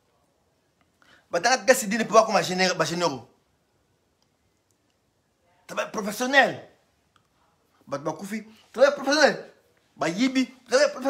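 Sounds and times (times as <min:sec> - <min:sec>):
man speaking: 0:01.3 - 0:03.3, 0:05.7 - 0:06.8, 0:07.8 - 0:11.0.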